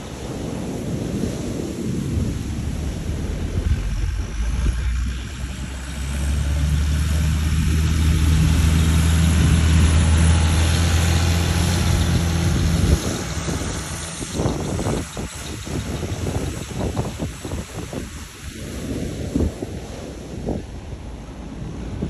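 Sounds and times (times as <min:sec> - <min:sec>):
surf: 0:00.0 - 0:22.0
wind: 0:00.0 - 0:22.0
tractor engine driving past: 0:02.1 - 0:17.4.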